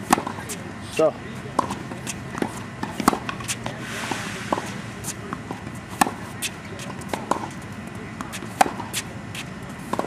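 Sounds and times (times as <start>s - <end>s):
tennis balls bouncing on hard court: 0.0s - 0.6s, 1.4s - 10.0s.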